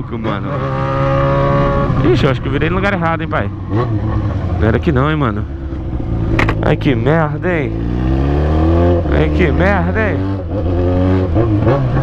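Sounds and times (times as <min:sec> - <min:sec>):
motorcycle engine running: 0:00.2 - 0:12.0.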